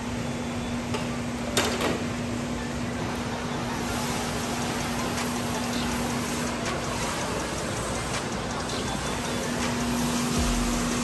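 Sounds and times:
constant low hum: 2.5 - 11.0
steady rushing noise: 3.5 - 11.0.

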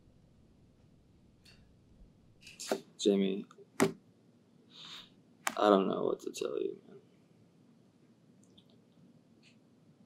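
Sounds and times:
man sharply drawing breath: 4.7 - 5.2.

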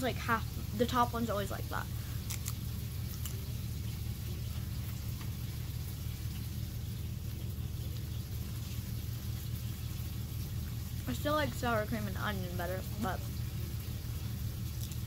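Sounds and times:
steady low hum: 0.0 - 15.0
crisp being bitten and chewed: 2.0 - 9.7, 14.6 - 15.0.

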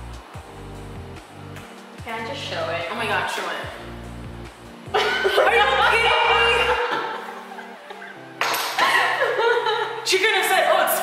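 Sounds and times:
soft background music: 0.0 - 11.0
women laughing and chattering: 5.0 - 10.2.

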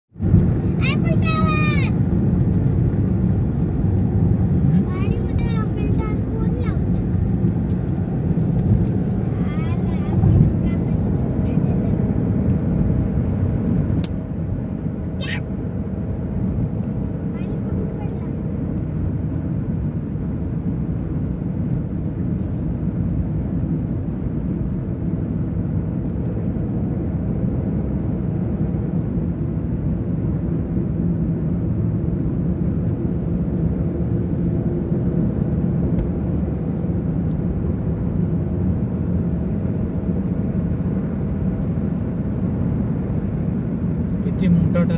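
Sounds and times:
car cabin road noise: 0.2 - 44.9.

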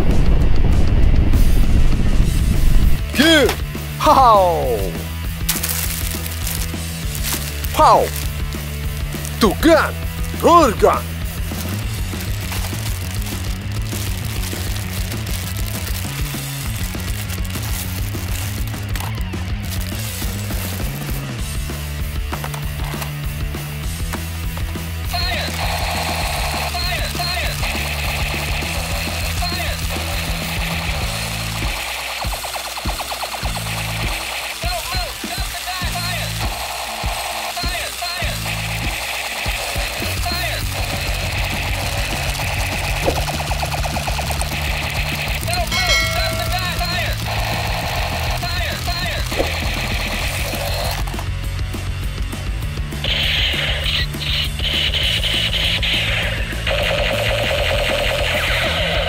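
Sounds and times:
toy gun electronic warbling tones: 49.3 - 51.1, 53.3 - 59.0.

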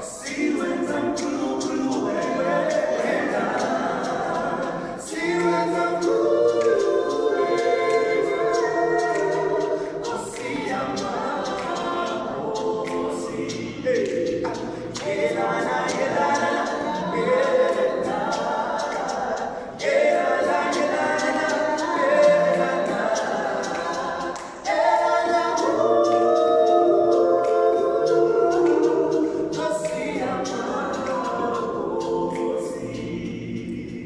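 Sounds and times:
men singing a cappella: 0.0 - 34.0.

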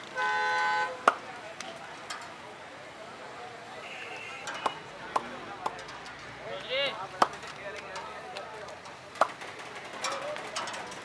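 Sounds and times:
street-stall background noise: 0.0 - 11.0.

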